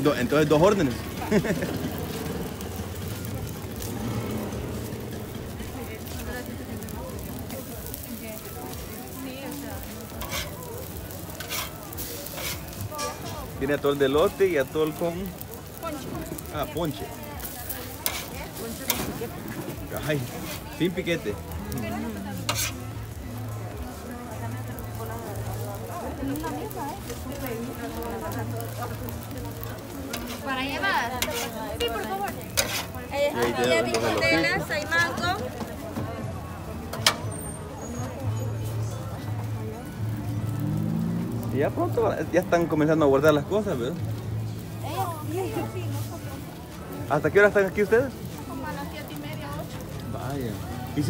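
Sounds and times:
corn cakes sizzling on a griddle: 0.0s - 51.0s
faint background music: 0.0s - 51.0s
voices: 0.0s - 51.0s.

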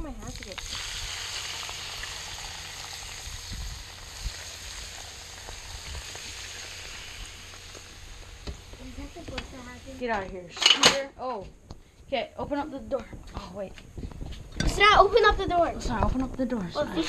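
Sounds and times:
hot oil sizzling and crackling: 0.0s - 10.3s.

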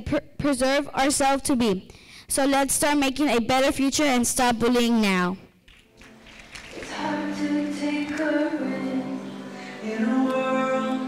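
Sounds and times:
song with sung voices: 5.9s - 11.0s.

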